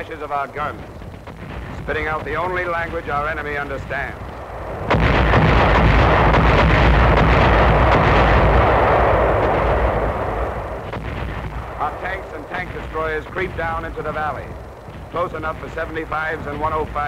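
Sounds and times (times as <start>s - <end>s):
artillery fire and shell bursts: 0.0s - 17.0s.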